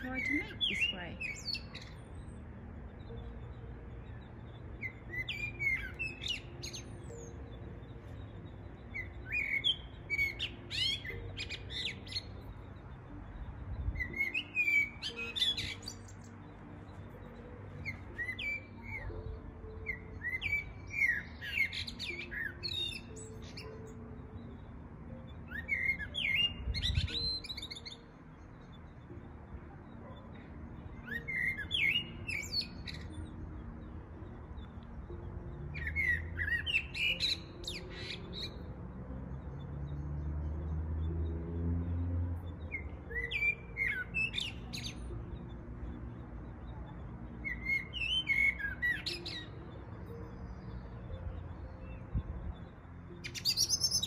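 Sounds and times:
blackbird singing: 0.0s - 54.0s.

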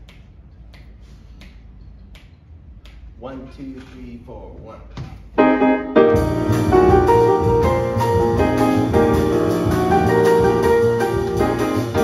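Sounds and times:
finger snaps: 0.0s - 3.2s
piano playing: 5.4s - 12.0s.

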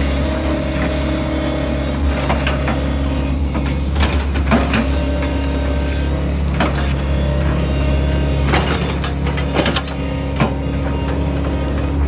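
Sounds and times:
excavator diesel engine running: 0.0s - 12.0s.

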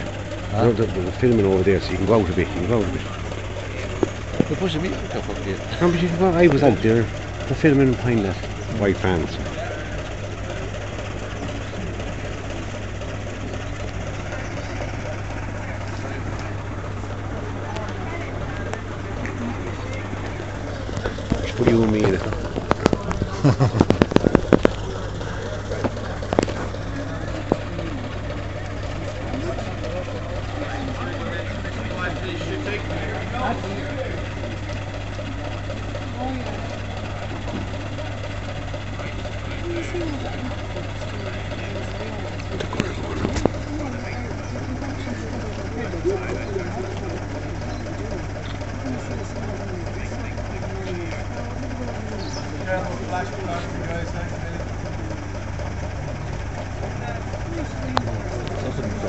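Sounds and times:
people chattering: 0.0s - 59.0s
vehicle engine idling: 0.0s - 59.0s.

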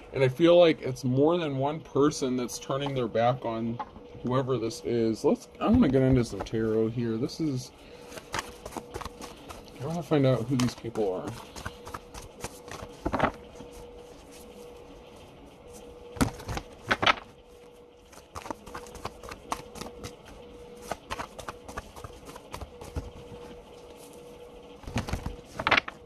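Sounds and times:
faint steady hum: 0.0s - 26.0s
cards being shuffled: 8.0s - 14.9s, 15.7s - 26.0s.

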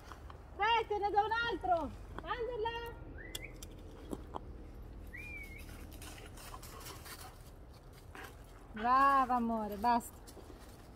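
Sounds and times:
bird whistling rising notes: 5.0s - 5.8s
dog running through dry leaves: 5.5s - 7.6s.

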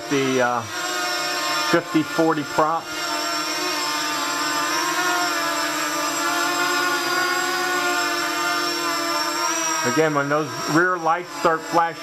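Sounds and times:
quadcopter hovering whine: 0.0s - 12.0s.

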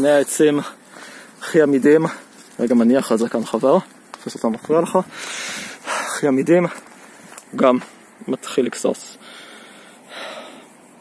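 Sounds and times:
person breathing: 0.6s - 1.4s, 5.1s - 6.2s, 9.2s - 10.8s.

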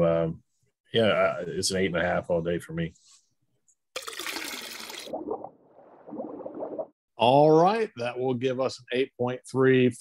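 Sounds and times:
beer pouring into a glass: 4.0s - 5.3s.

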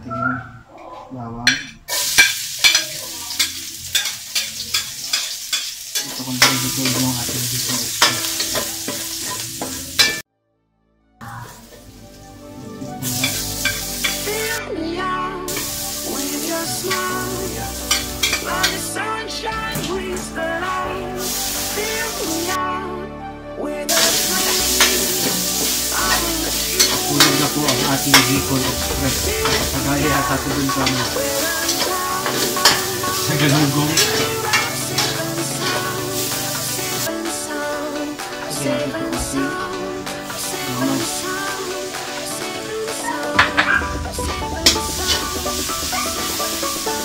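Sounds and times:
metal spatula scraping wok: 1.5s - 10.2s, 13.1s - 14.6s, 16.9s - 18.9s, 23.9s - 37.1s, 42.0s - 47.0s
vegetables sizzling in hot oil: 1.9s - 10.2s, 11.4s - 12.2s, 13.0s - 14.6s, 15.5s - 19.0s, 21.2s - 22.6s, 23.9s - 38.6s, 40.0s - 47.0s.

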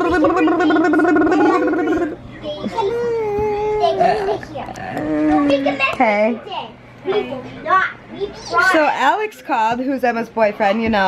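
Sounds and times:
woman speaking: 8.6s - 11.0s.

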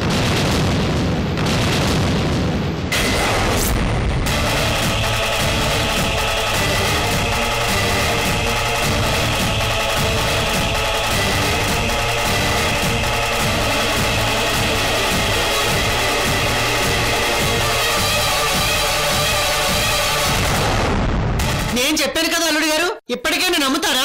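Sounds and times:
dramatic score with pulsing beat: 0.0s - 21.8s.

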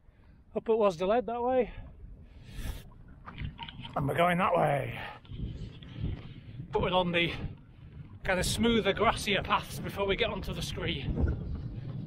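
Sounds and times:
wind rumbling on microphone: 1.7s - 12.0s.

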